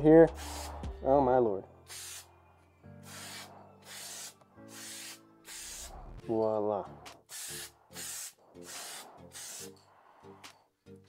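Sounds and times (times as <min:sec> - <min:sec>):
spray paint can hissing: 0:00.4 - 0:00.9, 0:01.9 - 0:02.3, 0:03.0 - 0:06.2, 0:07.2 - 0:09.8.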